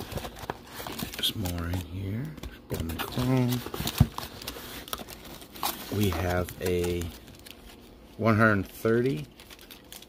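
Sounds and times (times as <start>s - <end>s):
hand rummaging in cardboard box: 0.0s - 7.6s.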